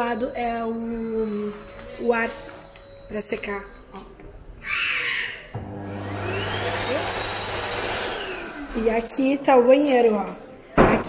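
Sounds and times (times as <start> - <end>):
hand dryer running: 5.6 - 9.2.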